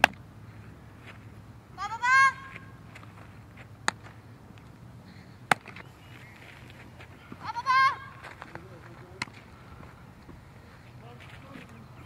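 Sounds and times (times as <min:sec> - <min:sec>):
person shouting high wavering: 0:01.8 - 0:02.6, 0:07.4 - 0:08.2.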